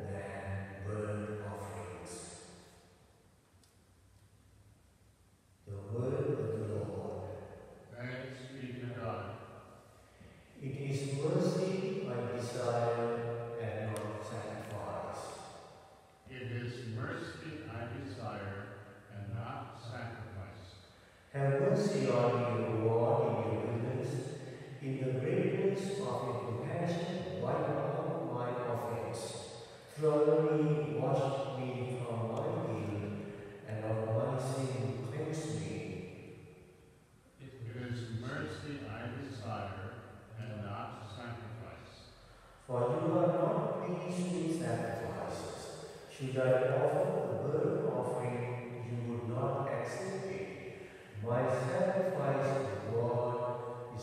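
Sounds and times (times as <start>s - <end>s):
man chanting: 0.0s - 2.3s, 5.7s - 9.2s, 10.6s - 15.5s, 16.3s - 20.7s, 21.3s - 36.0s, 37.4s - 42.0s, 42.6s - 54.0s.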